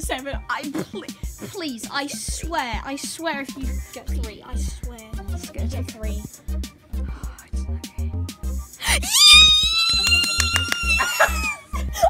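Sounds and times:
background music with beat: 0.0s - 12.0s
girl screaming: 8.9s - 11.6s.

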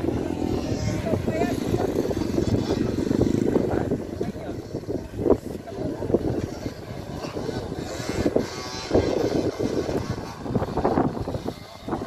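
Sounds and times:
distant motorcycle engines revving: 0.0s - 12.0s
wind on microphone: 0.0s - 12.0s.

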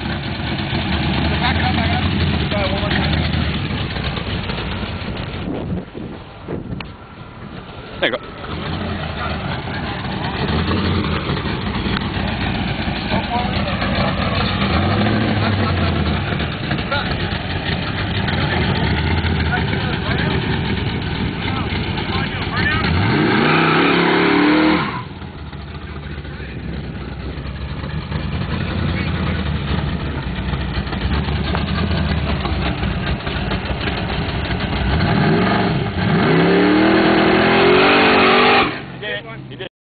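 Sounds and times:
drag car engine revving: 0.0s - 39.4s
car accelerating: 0.0s - 39.6s.

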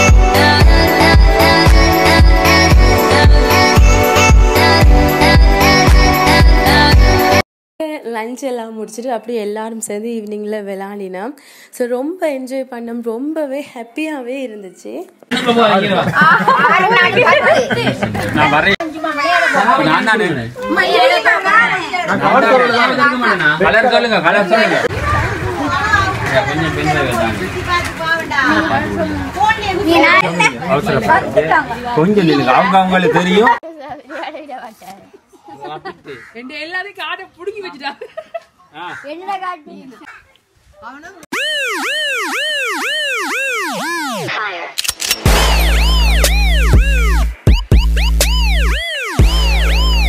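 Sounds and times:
adults and children talking: 15.9s - 41.3s
siren-like rising and falling tone: 41.3s - 50.0s.

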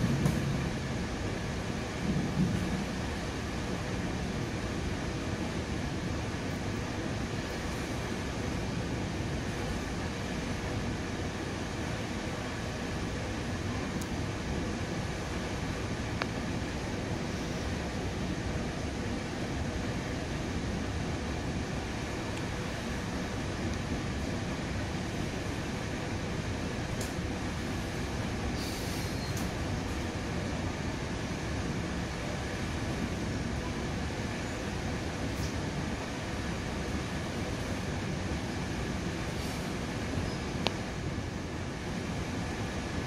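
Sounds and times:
train car body rumbling: 0.0s - 43.0s
train wheels rolling on rails: 0.0s - 43.0s.

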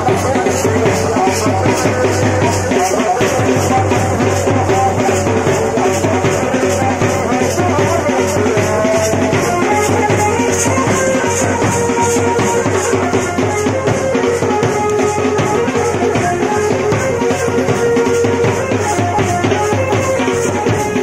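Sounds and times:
wedding band music: 0.0s - 21.0s.

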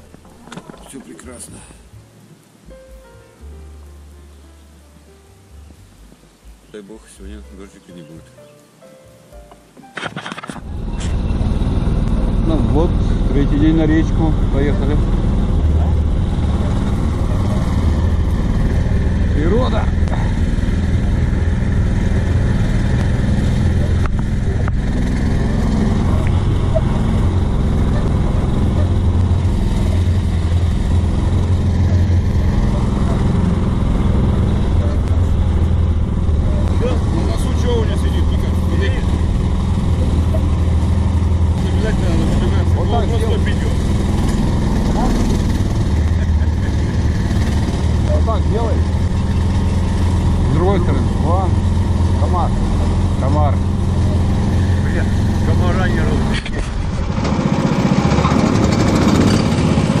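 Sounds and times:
vehicle engine running: 10.6s - 60.0s
voices: 22.5s - 57.0s.

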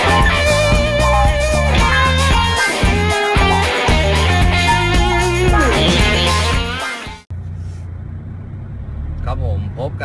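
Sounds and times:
music: 0.0s - 7.3s.

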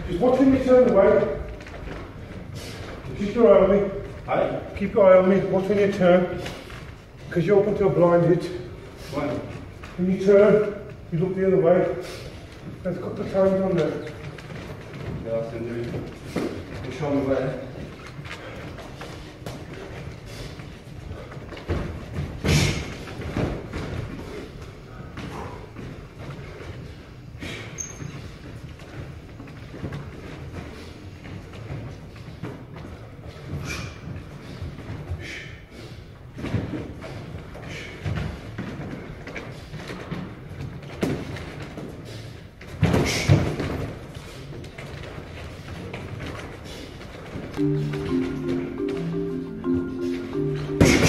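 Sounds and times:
shuffling footsteps on wooden floor: 47.3s - 51.0s.

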